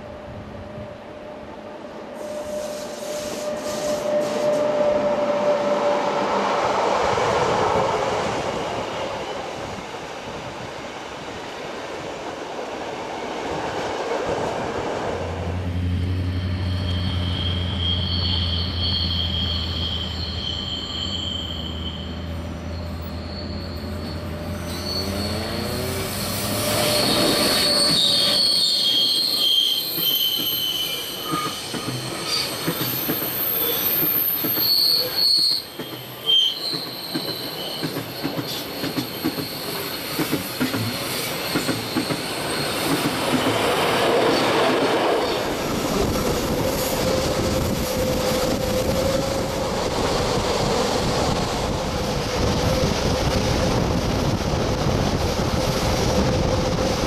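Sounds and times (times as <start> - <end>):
wheel flanges squealing on rail: 2.1 - 7.2, 15.8 - 57.0
train wheels clicking over track: 25.0 - 57.0.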